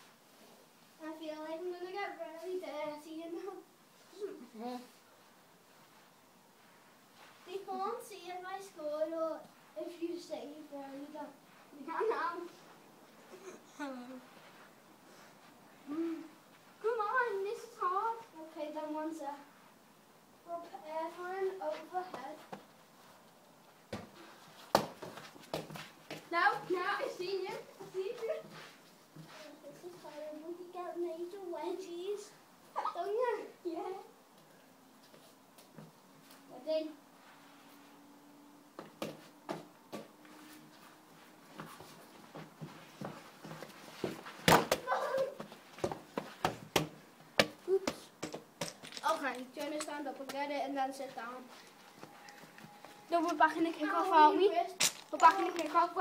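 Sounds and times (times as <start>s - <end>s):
child's voice: 1.0s - 5.0s, 7.5s - 12.6s, 15.9s - 19.5s, 20.5s - 22.5s, 26.3s - 28.5s, 29.3s - 34.1s, 36.5s - 37.0s, 44.8s - 45.5s, 47.7s - 48.1s, 49.0s - 51.6s, 53.1s - 56.0s
football kicked and bouncing: 23.9s - 26.2s, 44.0s - 48.4s.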